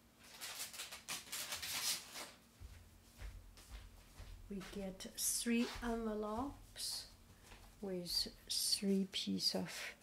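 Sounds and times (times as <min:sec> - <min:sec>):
paper rustling: 0:00.2 - 0:02.4.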